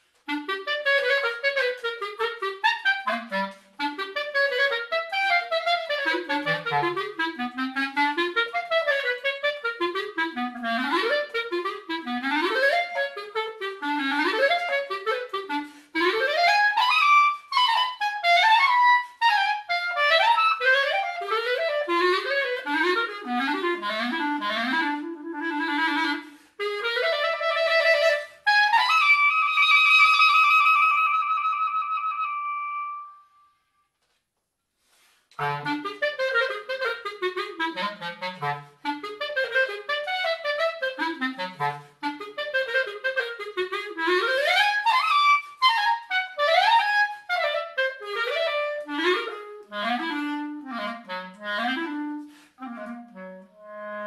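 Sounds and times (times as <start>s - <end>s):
solo clarinet melody: 0.0s - 34.0s, 34.8s - 54.0s.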